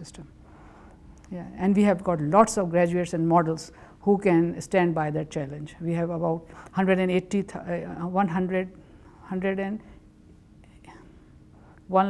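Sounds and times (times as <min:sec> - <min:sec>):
woman speaking: 0:00.0 - 0:00.3, 0:01.3 - 0:09.9
faint breaths: 0:00.4 - 0:01.2.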